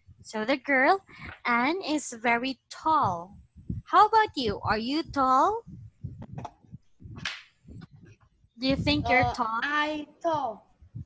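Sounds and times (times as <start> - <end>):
faint microphone noise: 2.8 - 11.0
microphone clicks: 2.9 - 9.5.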